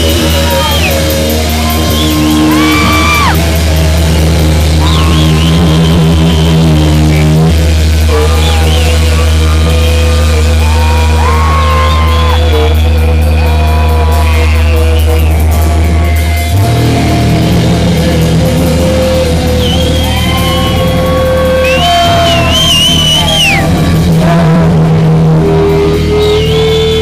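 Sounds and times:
heavy rock band playing: 0.0 - 27.0.

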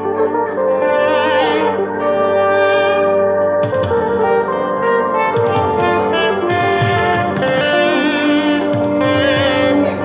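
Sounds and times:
backing track chords: 0.0 - 10.0
electric guitar lead with vibrato: 0.0 - 10.0.

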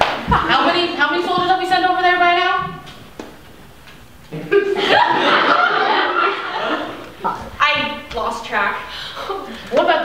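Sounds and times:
people talking: 0.2 - 2.8, 4.3 - 10.0
people laughing: 4.4 - 7.4, 9.2 - 10.0.

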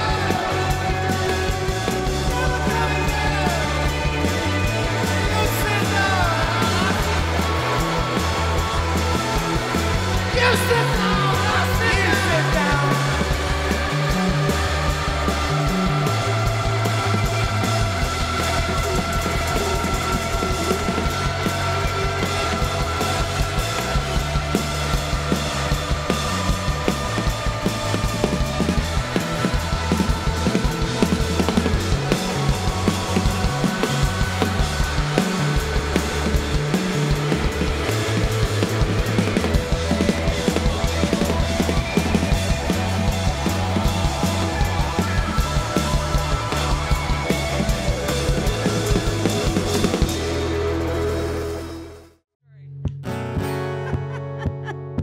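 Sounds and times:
live rock band playing: 0.0 - 52.1.

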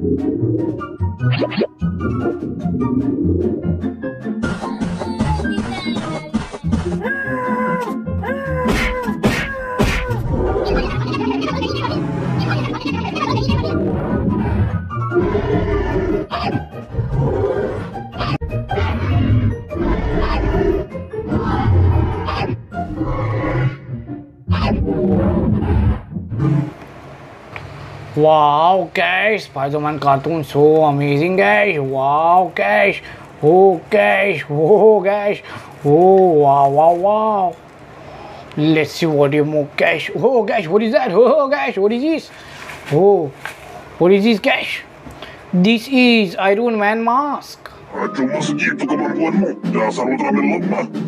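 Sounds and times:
cartoon background music: 0.0 - 25.0, 47.9 - 51.0
deep voice-like sound effects: 47.9 - 51.0.

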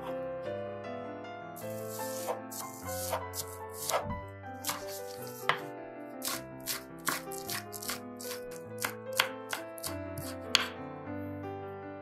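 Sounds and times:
background music: 0.0 - 11.8
knife chopping on wooden board: 1.8 - 10.8.

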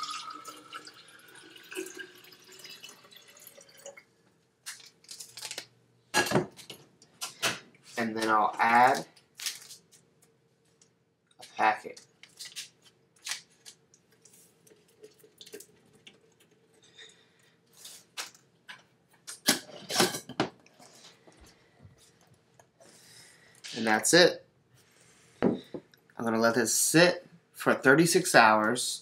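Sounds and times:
paper packet tearing: 4.7 - 5.7, 8.8 - 9.8.

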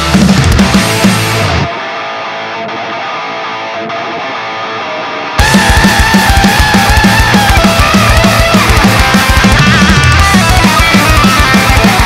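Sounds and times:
distorted electric guitar: 0.0 - 12.0
heavy rock band: 0.0 - 12.0.

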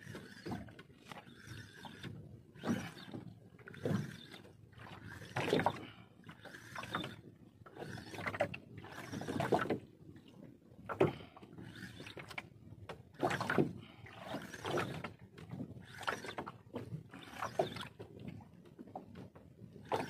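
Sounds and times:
fishing reel whirring and clicking: 1.2 - 5.4, 15.8 - 16.4, 17.2 - 17.9.

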